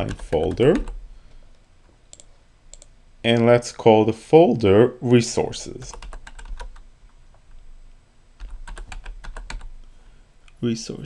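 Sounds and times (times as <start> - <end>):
keyboard keys tapping: 0.0 - 1.0, 5.9 - 6.8, 8.4 - 9.7.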